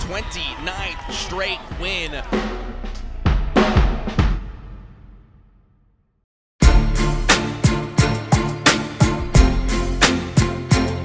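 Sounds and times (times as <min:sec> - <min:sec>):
heavy drum hits: 0:02.3 - 0:05.2
background music: 0:06.6 - 0:11.0.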